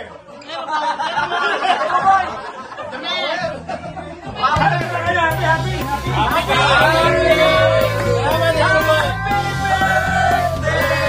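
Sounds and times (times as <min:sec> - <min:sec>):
men talking and calling out: 0:00.6 - 0:11.0
music: 0:01.2 - 0:11.0
deep bass note: 0:04.6 - 0:11.0.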